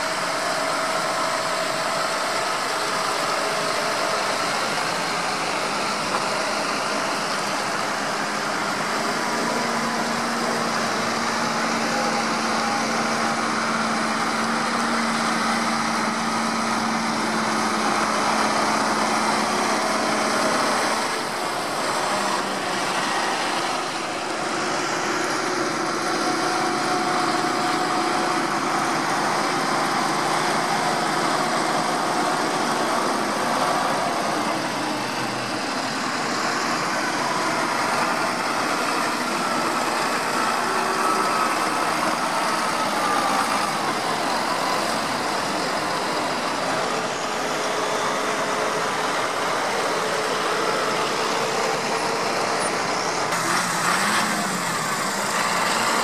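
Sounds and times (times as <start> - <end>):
tractor diesel engines running: 0.0 - 56.0
tyres on a wet road: 0.0 - 56.0.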